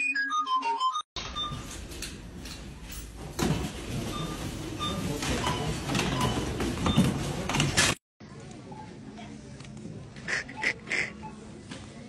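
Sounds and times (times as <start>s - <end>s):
clatter and rustle of goods: 1.2s - 8.0s.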